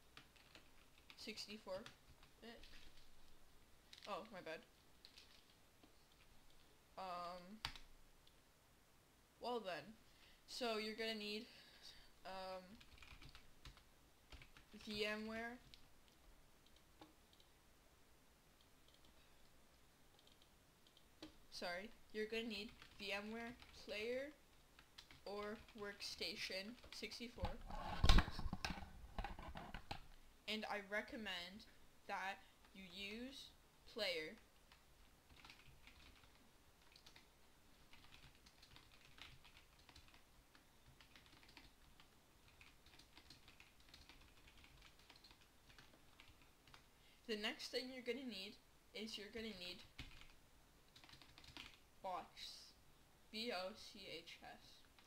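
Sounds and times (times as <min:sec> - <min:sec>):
keyboard typing: 0:00.1 - 0:03.1, 0:05.0 - 0:06.6, 0:07.3 - 0:07.9, 0:12.7 - 0:17.5, 0:18.6 - 0:19.2, 0:20.1 - 0:24.0, 0:24.8 - 0:25.9, 0:26.7 - 0:30.0, 0:34.3 - 0:46.9, 0:49.7 - 0:51.8.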